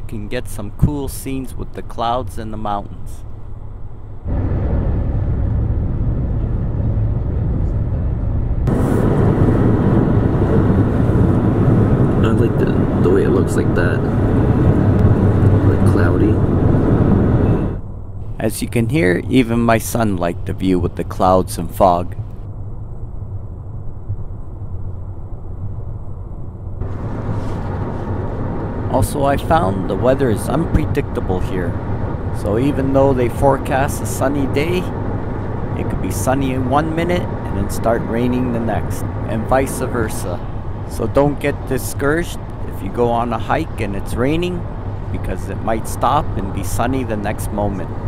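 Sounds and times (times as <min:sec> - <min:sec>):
car road and engine rumble: 0:00.0 - 0:48.0.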